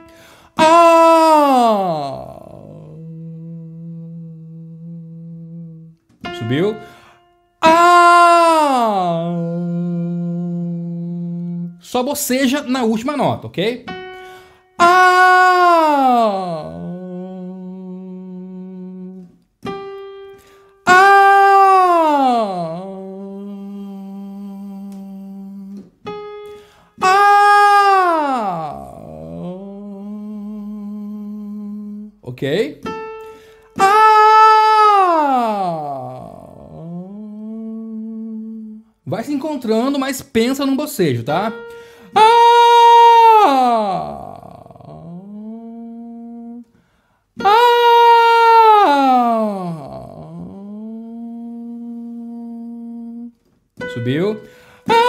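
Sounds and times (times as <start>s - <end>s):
man singing a low note: 0.6s - 6.9s, 7.6s - 12.0s, 14.8s - 19.4s, 20.9s - 25.9s, 27.0s - 32.7s, 33.8s - 39.6s, 42.2s - 46.7s, 47.4s - 55.0s.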